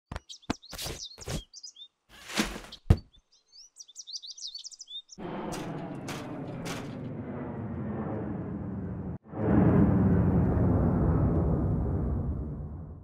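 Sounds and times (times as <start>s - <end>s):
high chirping calls: 0.1s - 2.0s, 2.7s - 5.2s
sharp knocks and thuds: 2.3s - 3.2s
low rumbling noise: 5.2s - 13.0s.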